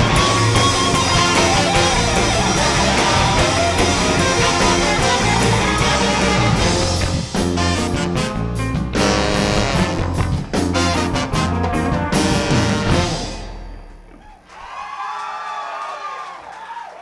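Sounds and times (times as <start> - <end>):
audience cheering and whistling: 0.0 - 5.5, 14.2 - 17.0
live band with brass: 0.0 - 13.7.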